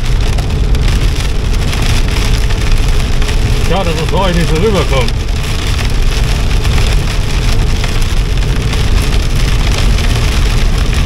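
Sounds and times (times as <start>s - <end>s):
rain hitting car: 0.0s - 11.0s
tyres on wet road: 0.0s - 11.0s.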